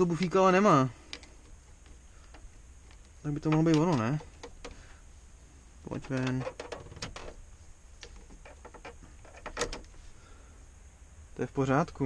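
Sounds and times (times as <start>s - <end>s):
plastic clicks and scrapes: 6.0s - 7.4s.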